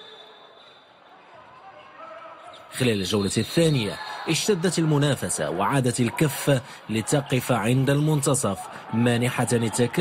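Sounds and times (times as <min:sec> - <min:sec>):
indoor sports hall crowd ambience: 0:00.0 - 0:10.0.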